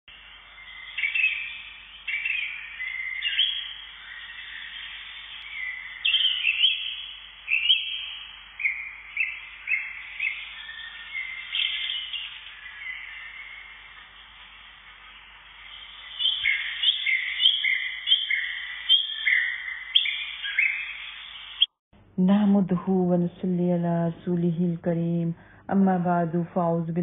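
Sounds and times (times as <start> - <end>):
songbird chirping and whistling: 0.2 - 14.4, 15.5 - 21.7.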